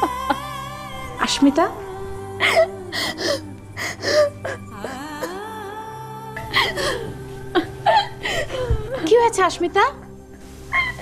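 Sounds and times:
woman sobbing: 0.0s - 9.4s
soft background music: 0.0s - 11.0s.

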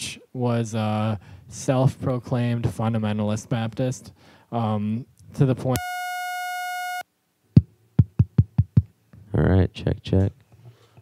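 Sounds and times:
buzzy electronic beep: 5.8s - 7.0s.

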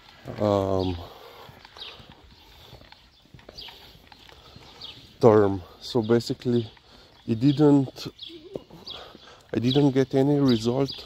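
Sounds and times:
footsteps on paving slabs: 0.0s - 11.0s.

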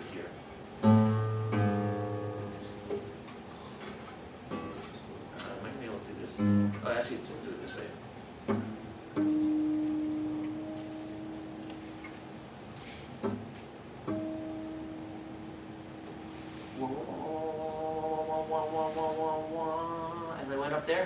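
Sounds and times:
acoustic guitar strings plucked: 0.8s - 3.4s, 4.0s - 5.6s, 6.3s - 7.0s, 8.4s - 12.6s, 13.2s - 20.4s.

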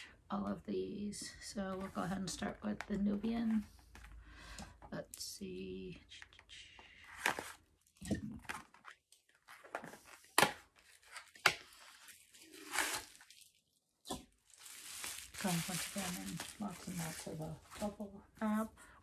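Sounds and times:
packaging crinkling and tearing: 8.4s - 17.8s.

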